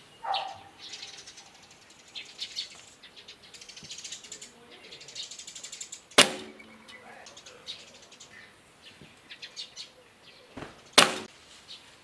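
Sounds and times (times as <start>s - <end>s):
faint high chirps: 0.0s - 10.4s
bow string ringing: 6.2s - 7.4s.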